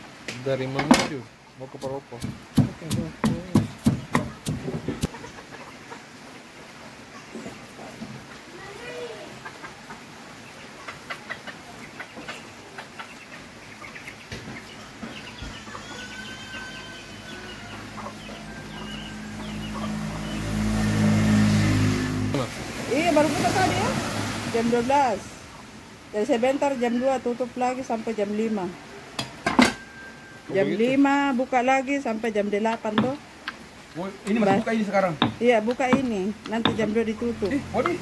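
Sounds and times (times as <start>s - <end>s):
fowl clucking: 4.0s - 6.2s, 10.8s - 14.7s, 15.3s - 20.4s.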